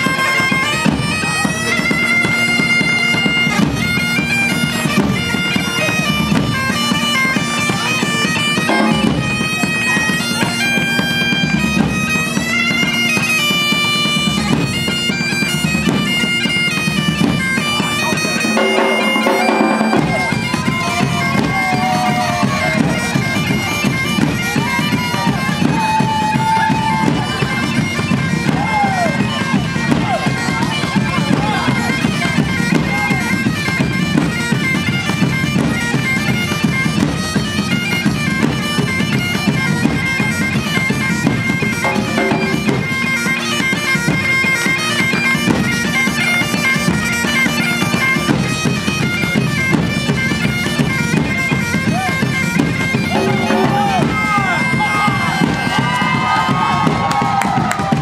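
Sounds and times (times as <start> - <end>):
bagpipe playing a tune: 0.0 - 58.0
drums beating a driving rhythm: 0.0 - 58.0.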